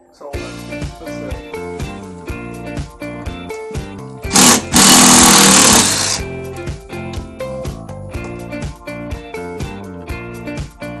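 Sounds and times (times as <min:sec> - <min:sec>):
cordless drill running: 0:04.3 - 0:06.2.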